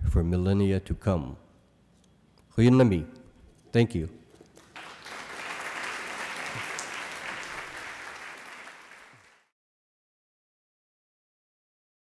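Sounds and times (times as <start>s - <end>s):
audience applauding: 4.6s - 9.5s.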